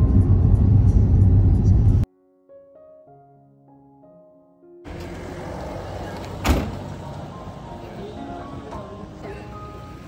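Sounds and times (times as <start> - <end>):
low rumble: 0.0 - 2.1.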